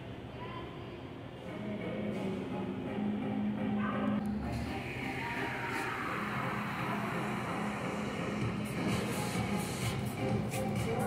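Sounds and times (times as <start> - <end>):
background music: 1.4 - 11.0.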